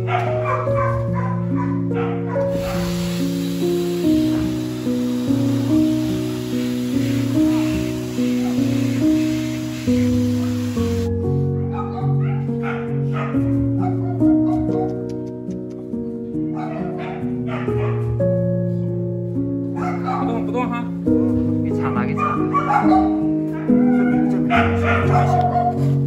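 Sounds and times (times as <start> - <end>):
background music with sustained notes: 0.0 - 26.0
blower dryer blowing air: 2.5 - 11.1.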